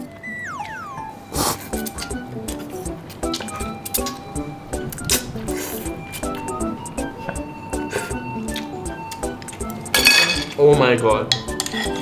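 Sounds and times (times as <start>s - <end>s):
background music with beat: 0.0s - 12.0s
utensils clinking on a bowl: 9.9s - 12.0s.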